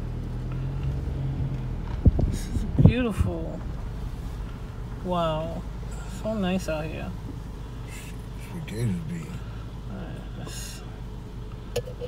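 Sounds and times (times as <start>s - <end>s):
car engine and cabin rumble: 0.0s - 12.0s.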